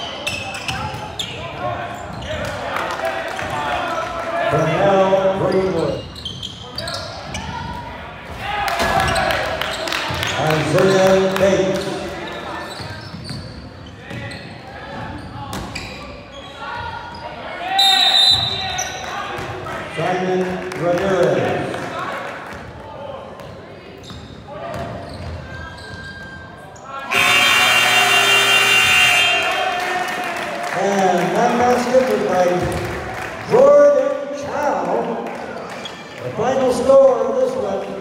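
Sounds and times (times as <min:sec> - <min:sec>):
voices in a gym: 0:00.0 - 0:38.0
shrill referee's whistle: 0:17.7 - 0:18.9, 0:27.1 - 0:29.6
loud scoreboard horn: 0:27.1 - 0:29.9.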